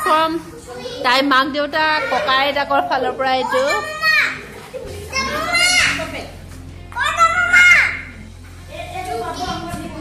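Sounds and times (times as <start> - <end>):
children calling out: 3.4 - 6.0, 7.0 - 8.2.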